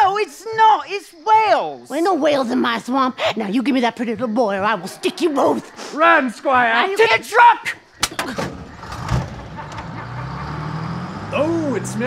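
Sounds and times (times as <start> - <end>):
truck engine starting and running: 8.0 - 12.0.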